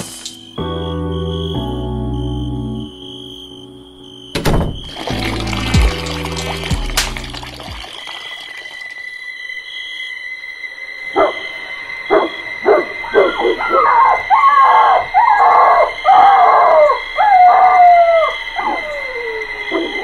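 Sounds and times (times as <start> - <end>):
dog whining and howling: 12.1 - 20.0.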